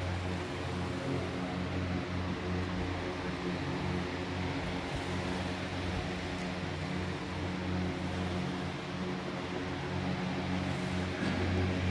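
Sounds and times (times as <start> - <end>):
air conditioners and fans humming: 0.0 - 11.9.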